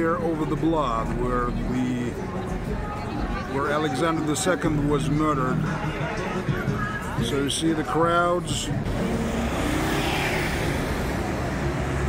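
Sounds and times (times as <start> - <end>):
steady low traffic rumble: 0.0 - 12.0
cars passing: 5.6 - 12.0
vehicle passing close: 8.8 - 12.0.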